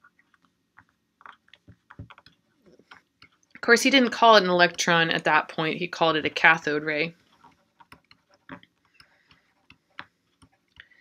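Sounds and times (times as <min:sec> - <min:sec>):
stylus ticking on tablet screen: 0:00.0 - 0:03.6, 0:07.4 - 0:11.0.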